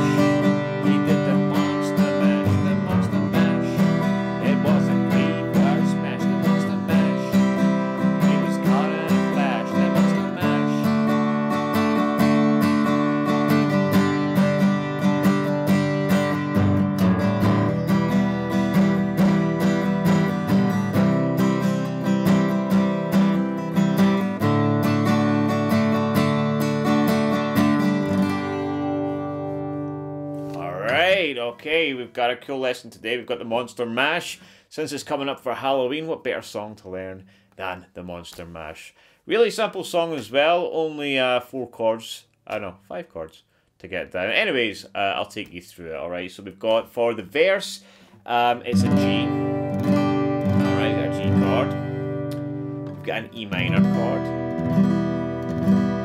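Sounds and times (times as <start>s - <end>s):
acoustic guitar strumming: 0.0s - 32.0s, 48.0s - 56.0s.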